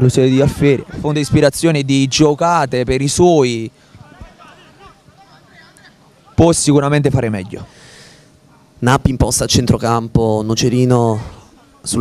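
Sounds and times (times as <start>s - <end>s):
distant players calling out: 3.4s - 8.8s.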